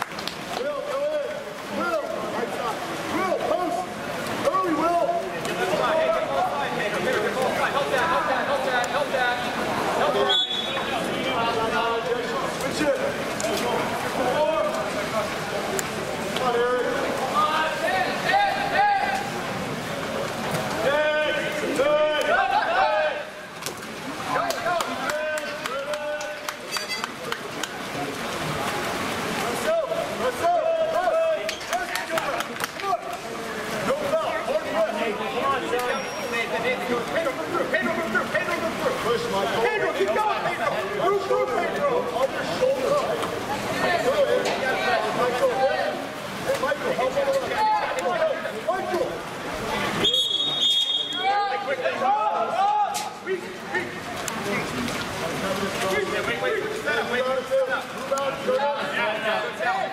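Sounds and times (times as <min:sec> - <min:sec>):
background chatter: 0:00.0 - 0:59.9
people shouting and calling out: 0:00.5 - 0:19.7, 0:20.7 - 0:27.0, 0:29.4 - 0:59.9.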